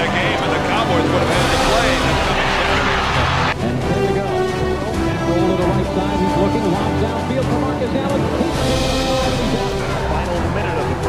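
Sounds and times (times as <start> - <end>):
announcer speaking: 0.0 - 11.0
background music: 0.0 - 11.0
stadium crowd noise: 0.0 - 11.0.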